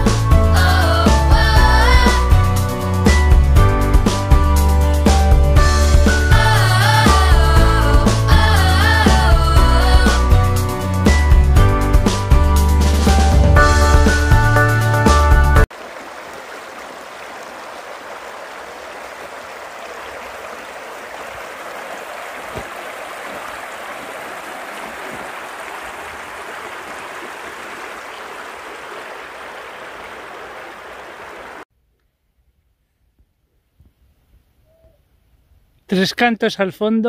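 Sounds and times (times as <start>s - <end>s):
music: 0.0s - 15.7s
stream flowing water: 15.7s - 31.6s.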